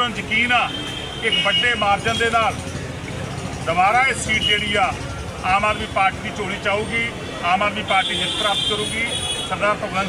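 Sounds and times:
man speaking: 3.7 - 10.0.

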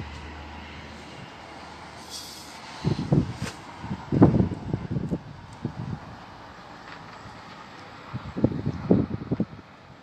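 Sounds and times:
city background noise: 0.0 - 10.0
brief hiss: 2.0 - 2.6.

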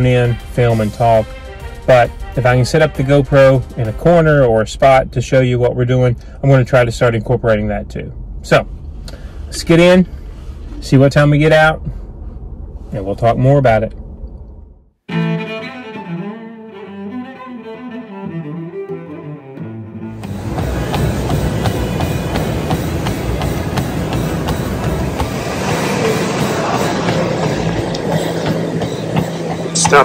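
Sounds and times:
bowed string background music: 0.0 - 4.5, 15.1 - 25.3
treadmill belt and motor: 20.2 - 26.2.

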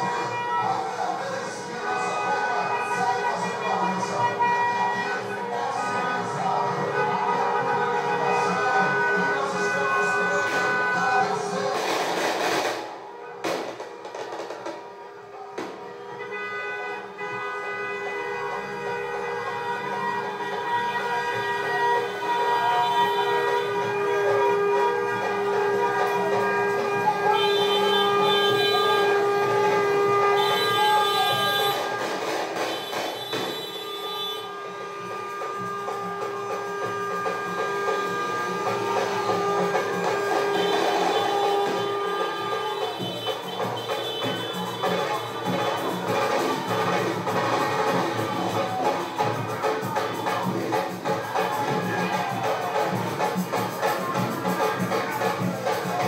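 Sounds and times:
car horns blasting: 0.0 - 56.0.

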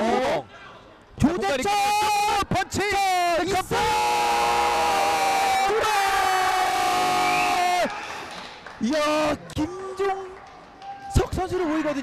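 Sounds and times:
stadium crowd noise: 0.0 - 12.0.

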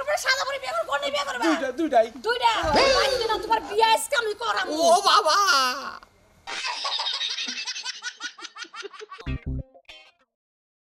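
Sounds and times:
person laughing: 4.7 - 9.4.

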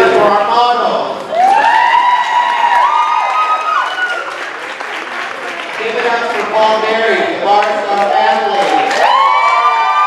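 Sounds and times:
crowd applauding: 1.2 - 10.0.

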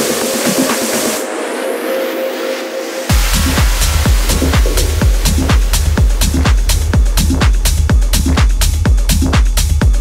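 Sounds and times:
filtered noise sweep: 0.0 - 10.0.

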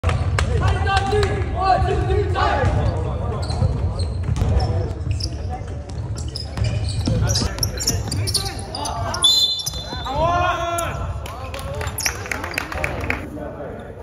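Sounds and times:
basketballs bouncing on wooden court: 0.0 - 10.6.

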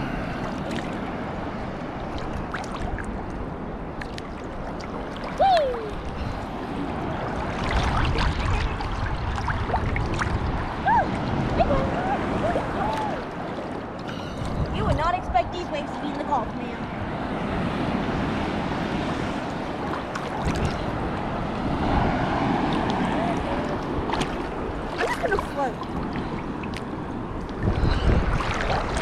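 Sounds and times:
seawater lapping and sloshing: 0.0 - 29.0.

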